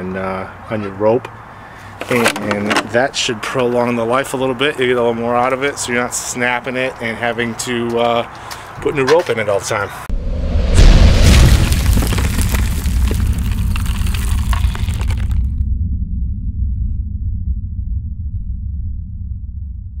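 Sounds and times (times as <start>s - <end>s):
deep boom: 10.1s - 20.0s
low rumble: 10.1s - 20.0s
small crackles: 11.4s - 15.6s.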